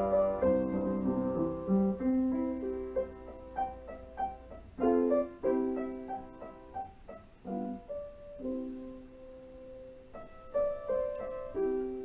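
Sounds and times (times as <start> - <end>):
solo piano music: 0.0 - 12.0.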